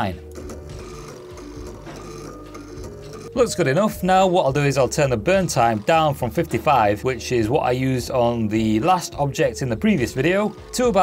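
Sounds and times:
stepper motors buzzing: 0.2 - 11.0.

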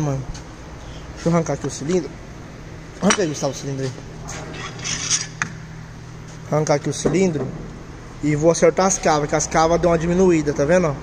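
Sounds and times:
metal scraping on metal: 4.4 - 5.4.

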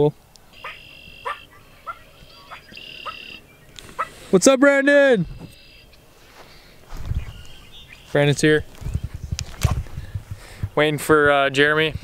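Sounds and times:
short low frog calls: 0.5 - 3.4
frogs trilling: 0.5 - 4.2, 5.5 - 6.0.

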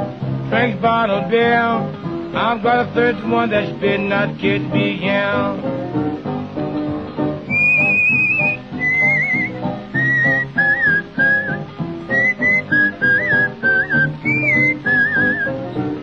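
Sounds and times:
boogie-woogie piano: 0.0 - 16.0
guitar accompaniment: 0.0 - 16.0
person whistling blues melody: 7.4 - 15.9.

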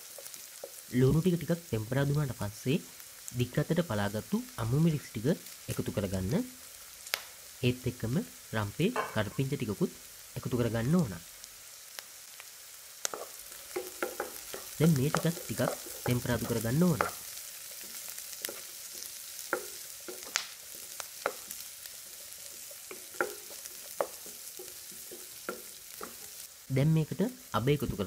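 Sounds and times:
vegetables sizzling in oil: 0.0 - 28.0
person speaking: 0.9 - 6.6, 7.6 - 11.2, 14.6 - 17.2, 26.7 - 28.0
wooden spatula scraping wok: 13.1 - 26.7.

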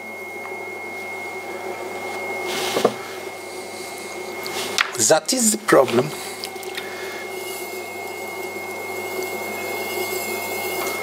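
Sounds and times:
pottery wheel motor hum and whine: 0.0 - 11.0.

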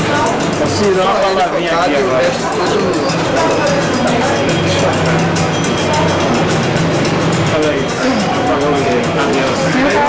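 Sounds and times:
indistinct voices talking: 0.0 - 10.0
music with quick percussion beat: 0.0 - 10.0.

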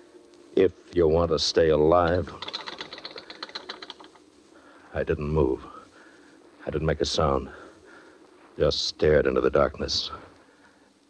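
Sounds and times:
rapid faint clicks: 1.9 - 4.9.

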